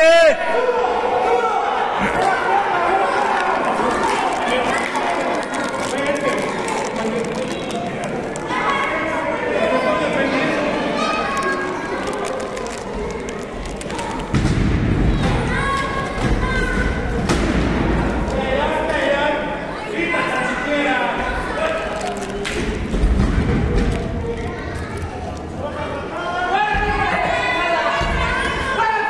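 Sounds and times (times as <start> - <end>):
voices shouting in a hall: 0.0 - 23.0, 24.5 - 29.0.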